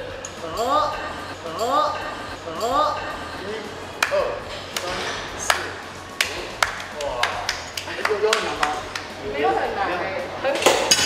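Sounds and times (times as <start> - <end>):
hand claps: 4.0 - 9.2.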